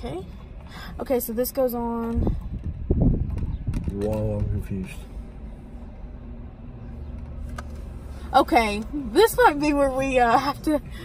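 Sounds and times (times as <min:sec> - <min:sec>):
car cabin hum: 0:00.0 - 0:11.0.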